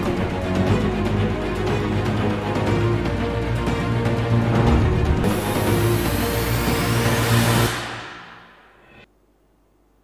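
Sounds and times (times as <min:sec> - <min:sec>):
news theme music: 0:00.0 - 0:08.5.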